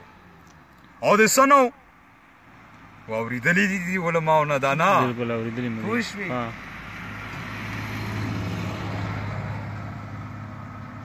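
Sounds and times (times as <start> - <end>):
pickup truck driving past: 5.1 - 11.0.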